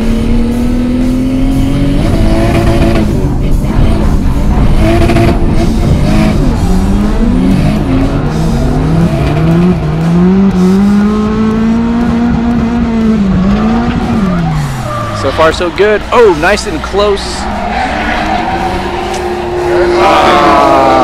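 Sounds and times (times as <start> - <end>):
car engines revving hard: 0.0 - 21.0.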